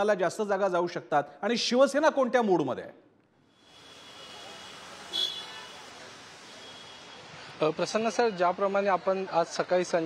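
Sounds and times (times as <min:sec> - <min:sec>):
street traffic noise: 0:03.2 - 0:10.0
short high-pitched toot: 0:03.6 - 0:05.8.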